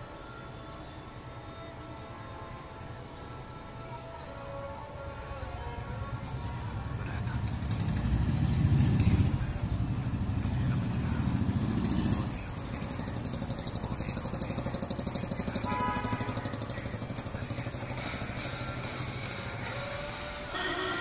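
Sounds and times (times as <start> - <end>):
vehicle engine rumbling: 0.0 - 21.0.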